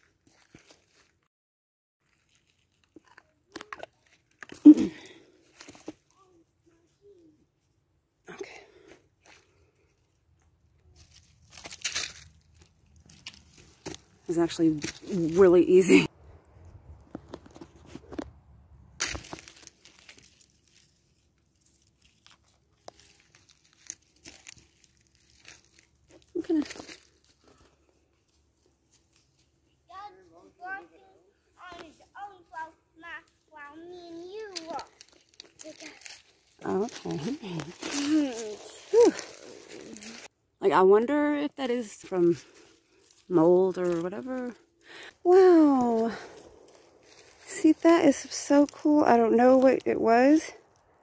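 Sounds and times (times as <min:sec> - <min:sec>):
footsteps crunching dry leaves: 0:00.0 - 0:01.2, 0:02.0 - 0:02.9, 0:10.9 - 0:16.1, 0:19.0 - 0:29.6, 0:31.6 - 0:40.3, 0:42.0 - 0:50.8.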